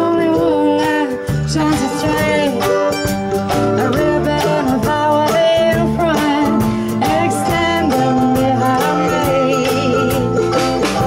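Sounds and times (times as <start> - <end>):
acoustic folk band playing: 0.0 - 11.0
person singing: 0.0 - 11.0.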